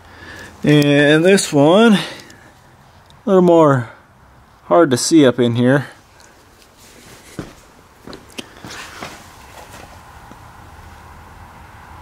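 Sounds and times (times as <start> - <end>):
light knocks and scuffs of handling: 6.6 - 10.5.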